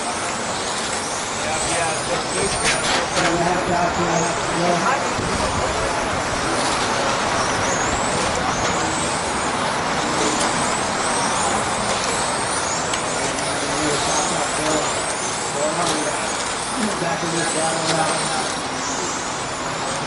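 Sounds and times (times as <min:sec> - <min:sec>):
electric motors whining: 0:00.0 - 0:20.0.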